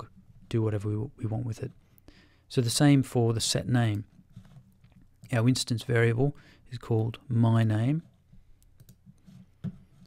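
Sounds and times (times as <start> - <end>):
computer mouse clicks: 8.6 - 9.8.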